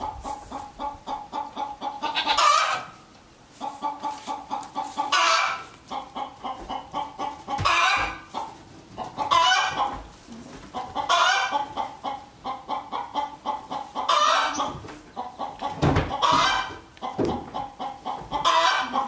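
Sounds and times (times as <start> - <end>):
chickens clucking: 0.0 - 19.0
chicken squawk: 0.3 - 3.0, 3.6 - 8.5, 9.1 - 9.9, 11.0 - 16.8, 17.6 - 19.0.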